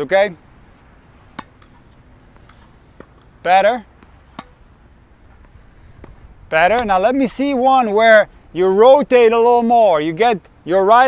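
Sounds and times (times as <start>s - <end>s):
faint outdoor background noise: 0.0s - 11.0s
tennis ball struck by racket: 0.8s - 6.9s.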